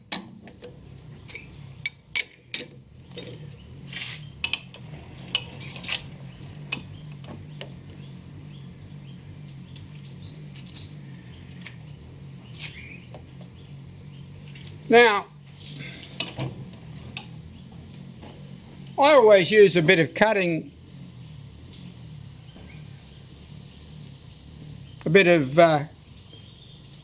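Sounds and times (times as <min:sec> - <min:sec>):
low machine hum: 0:00.0 - 0:27.0
steel tooling clinking: 0:01.3 - 0:03.4.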